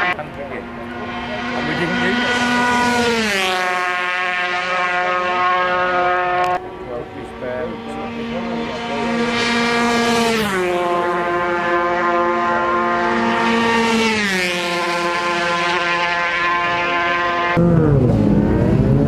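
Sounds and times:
racing motorcycles passing by: 0.0s - 19.0s.

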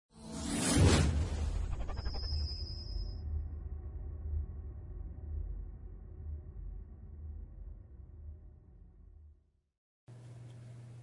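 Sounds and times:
steady low drone: 0.1s - 9.4s
whoosh sound effect: 0.2s - 2.8s.

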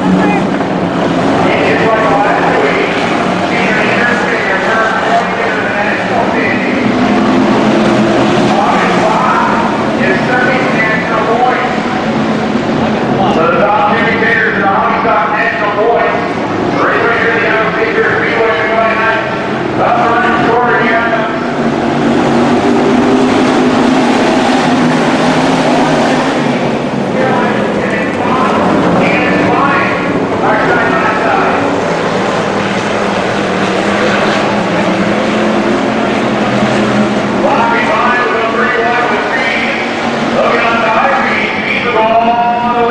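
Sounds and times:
race car engines running hard: 0.0s - 42.9s.

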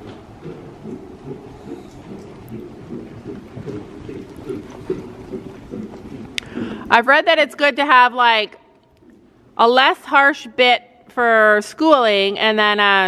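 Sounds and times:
low rumbling noise: 0.0s - 7.4s.

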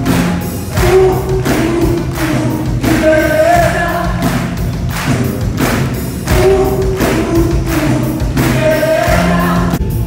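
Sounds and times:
thumping beat: 0.0s - 9.8s
live band music over pa: 0.0s - 10.0s
sustained bass line: 0.0s - 10.0s.

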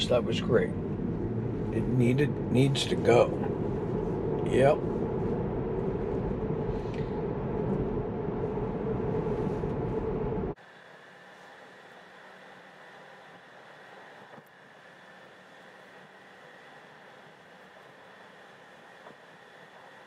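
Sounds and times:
road and tyre noise in car cabin: 0.0s - 20.0s.

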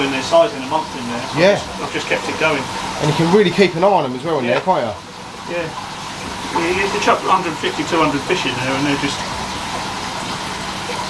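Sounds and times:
water splashing into aquarium: 0.0s - 11.0s.

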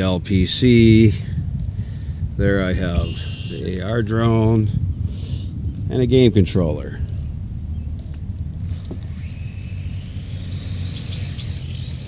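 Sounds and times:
wind rumble on microphone: 0.0s - 12.0s
drone rotors whining: 2.4s - 4.6s, 7.3s - 12.0s.

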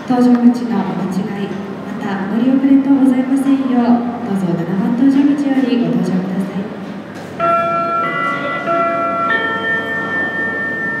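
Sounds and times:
public-address chime: 7.4s - 11.0s.

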